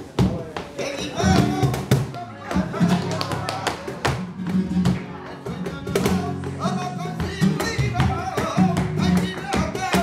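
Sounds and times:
flamenco guitar: 0.0s - 10.0s
hand clapping: 1.6s - 10.0s.

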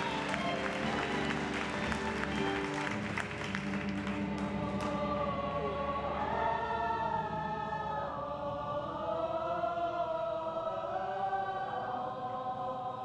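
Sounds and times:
sharp claps or clicks: 0.0s - 5.0s
chorus singing held notes: 0.0s - 13.0s.

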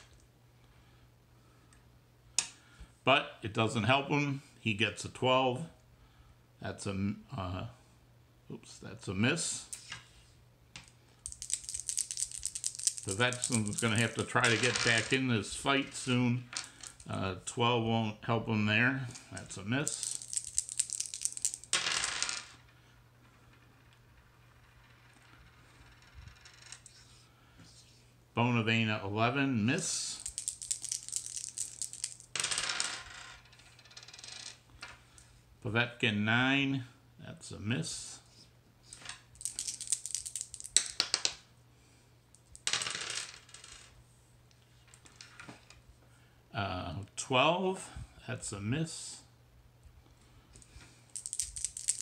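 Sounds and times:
faint steady hum: 0.0s - 52.0s
dice clattering on a tabletop: 10.8s - 15.3s, 15.9s - 17.1s, 19.3s - 22.7s, 30.1s - 35.0s, 38.9s - 41.4s, 42.4s - 43.9s, 50.6s - 52.0s
dice clicking in a hand: 11.3s - 15.1s, 19.8s - 21.7s, 30.2s - 32.3s, 39.4s - 41.4s, 51.2s - 52.0s.

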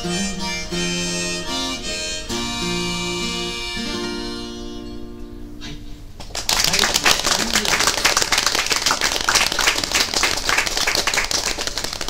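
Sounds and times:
audience clapping: 6.2s - 12.0s.

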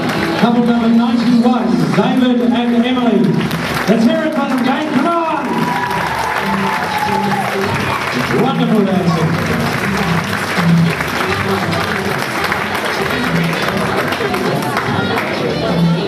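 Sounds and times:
audience applauding: 0.0s - 15.8s
background music: 0.0s - 16.0s
crowd voices: 0.0s - 16.0s.

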